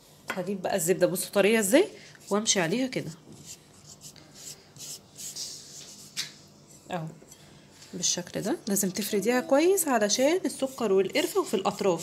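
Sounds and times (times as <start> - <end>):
butter spreading on dough: 2.1 - 6.9, 10.1 - 12.0.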